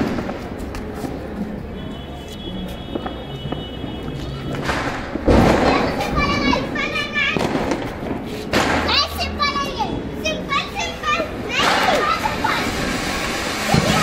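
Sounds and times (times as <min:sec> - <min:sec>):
children chattering excitedly: 0:03.0 - 0:14.0.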